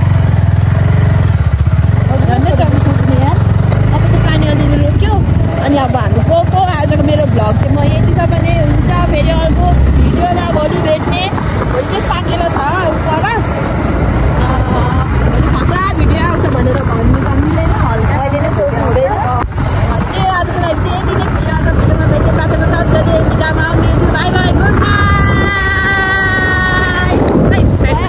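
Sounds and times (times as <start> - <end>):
motorcycle rumbling: 0.0 - 28.0
voices chattering: 1.8 - 28.0.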